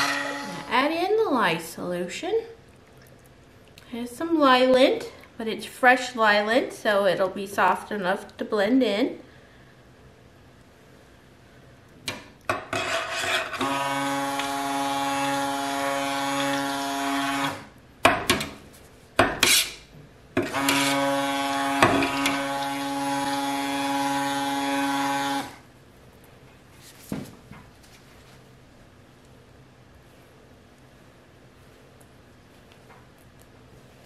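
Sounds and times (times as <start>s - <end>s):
stick blender motor humming: 0.0s - 0.8s, 13.4s - 17.7s, 20.4s - 25.6s.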